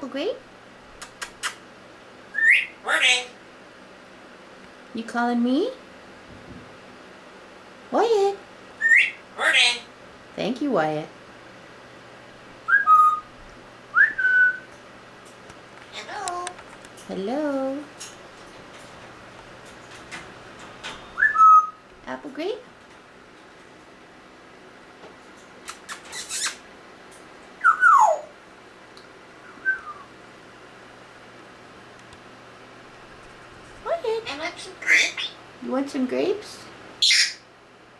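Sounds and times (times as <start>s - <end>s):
parrot whistling: 2.3s - 3.3s, 8.8s - 9.9s, 12.7s - 13.3s, 13.9s - 14.7s, 21.2s - 21.8s, 27.6s - 28.3s, 29.4s - 30.1s.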